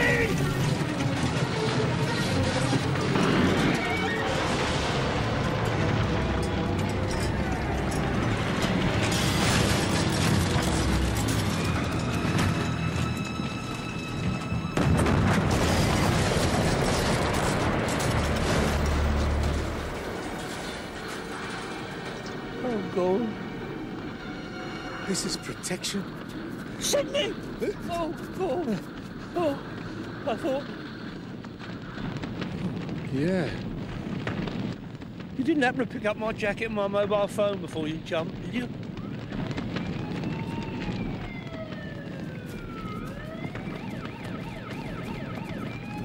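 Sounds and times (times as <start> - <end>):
caravan rumbling and crashing: 0.0 - 23.2
dramatic background music: 0.0 - 30.5.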